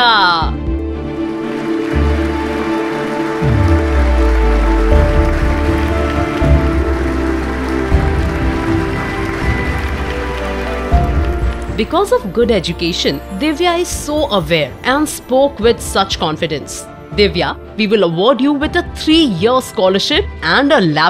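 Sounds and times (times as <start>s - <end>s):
background music: 0.0s - 21.0s
audience applauding: 0.8s - 12.4s.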